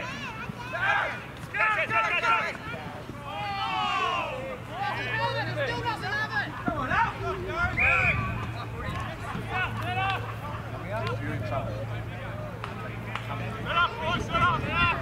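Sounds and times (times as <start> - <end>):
shouting and chatter: 0.0 - 15.0.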